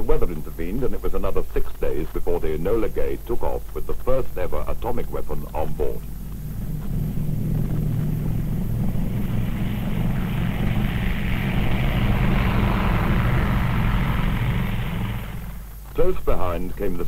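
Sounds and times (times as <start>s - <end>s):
propeller plane engines droning: 0.0s - 17.0s.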